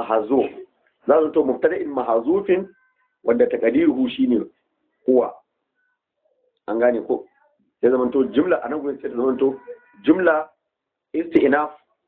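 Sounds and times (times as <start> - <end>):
man talking: 0.0 - 5.5, 6.7 - 10.6, 11.2 - 11.8.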